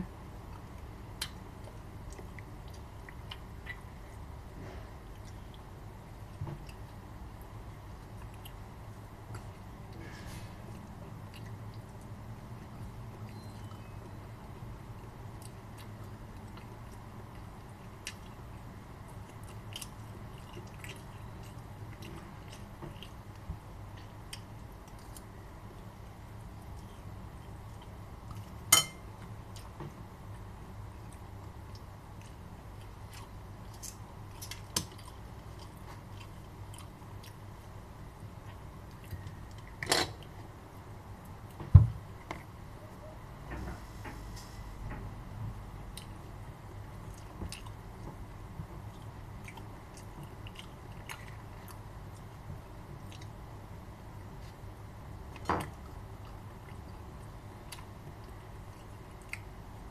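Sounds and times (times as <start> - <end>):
steady low hum: 0.0 - 59.9
person chewing food: 0.4 - 14.2, 14.9 - 40.3, 45.9 - 53.4, 54.2 - 59.6.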